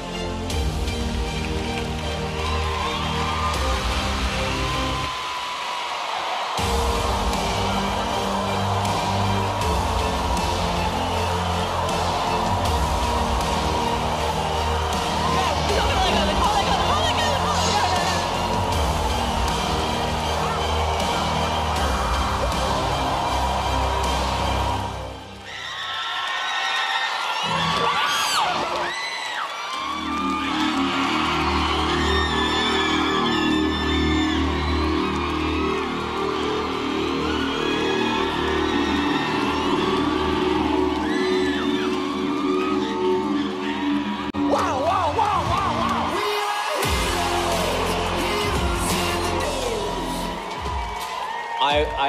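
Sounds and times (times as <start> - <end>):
dramatic backing music: 0.0 - 5.2, 6.6 - 25.5, 29.8 - 52.0
audience cheering: 0.0 - 52.0
audience screaming and whooping: 0.0 - 52.0.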